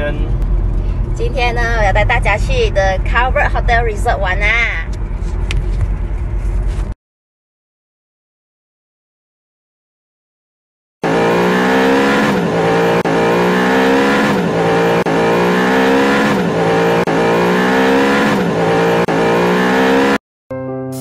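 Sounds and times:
car engine with sweeping pitch: 0:11.0 - 0:20.2.

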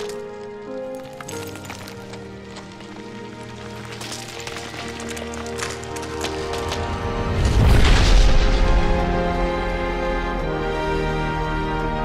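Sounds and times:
sharp crackling effects: 0:00.0 - 0:09.4
dramatic orchestral score: 0:00.0 - 0:12.0.

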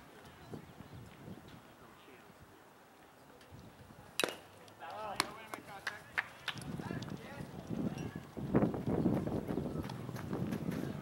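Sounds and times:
sharp crack of baseball: 0:04.2 - 0:06.6.

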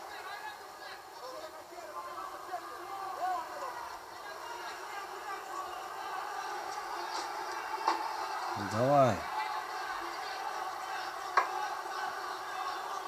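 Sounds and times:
boxing broadcast through tv speaker: 0:00.0 - 0:13.0
indistinct voices: 0:08.5 - 0:13.0.

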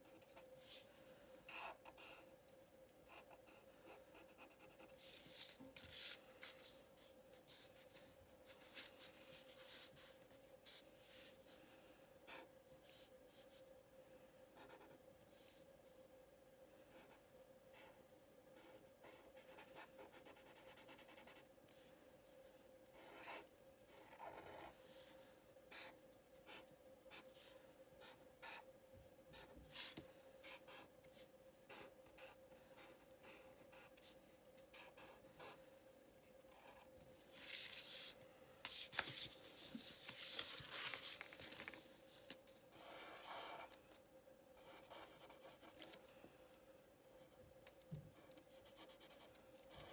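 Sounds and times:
faint steady hum: 0:00.0 - 0:49.9.

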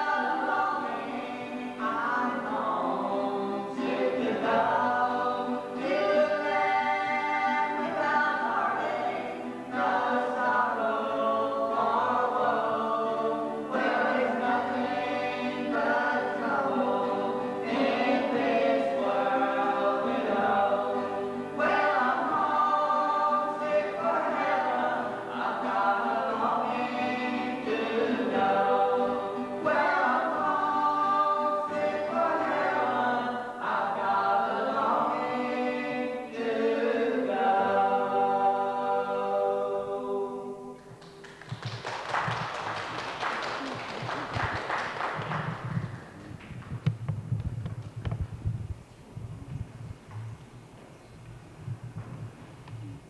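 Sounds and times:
group singing in harmony: 0:00.0 - 0:41.1
acoustic guitars: 0:00.0 - 0:53.0
audience clapping: 0:40.9 - 0:46.9
thumps and knocks of movement: 0:45.6 - 0:50.5, 0:51.2 - 0:53.0.

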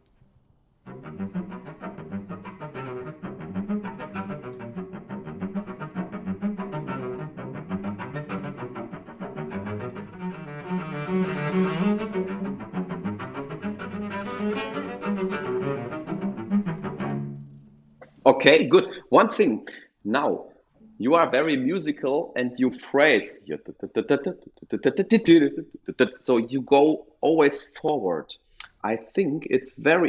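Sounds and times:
cello playing spiccato notes: 0:00.8 - 0:19.3, 0:20.7 - 0:22.2.

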